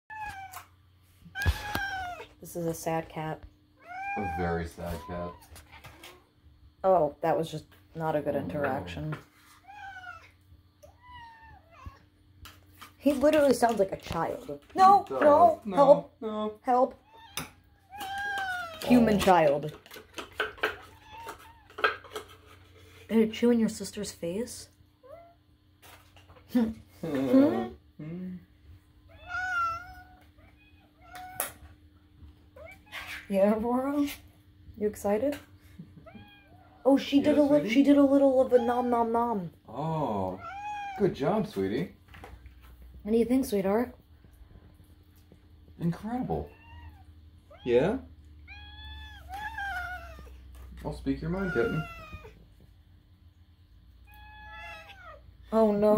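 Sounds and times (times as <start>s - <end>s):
faint high cat meow: 0.1s - 0.7s, 1.4s - 2.3s, 3.8s - 6.1s, 9.6s - 12.1s, 17.0s - 18.9s, 29.1s - 31.6s, 36.0s - 36.8s, 40.3s - 41.0s, 48.5s - 50.4s, 51.3s - 52.4s, 54.0s - 55.2s.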